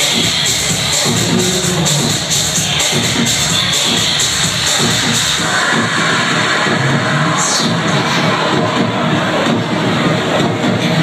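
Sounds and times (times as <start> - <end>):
crowd cheering and shouting: 0.0 - 11.0
electronic dance music: 0.0 - 11.0.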